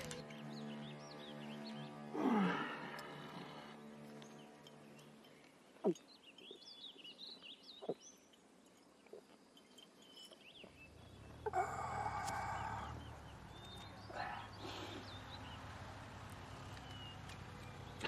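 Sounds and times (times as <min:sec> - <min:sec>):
small birds chirping: 0:00.0 - 0:18.0.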